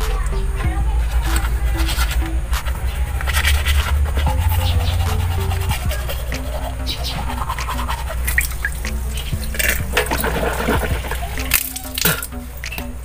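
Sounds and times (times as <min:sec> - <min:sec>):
background music with hopping melody: 0:00.0 - 0:13.0
toothbrush scrubbing teeth: 0:01.0 - 0:12.4.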